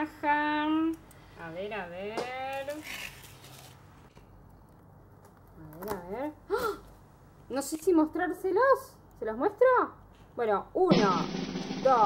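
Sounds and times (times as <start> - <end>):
woman's voice: 0.0 - 2.8.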